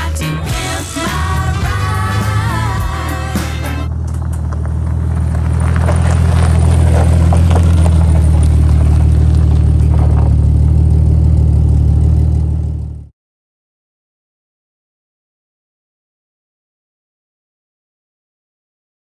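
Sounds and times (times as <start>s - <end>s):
sung music: 0.0s - 3.9s
car engine running: 0.0s - 13.1s.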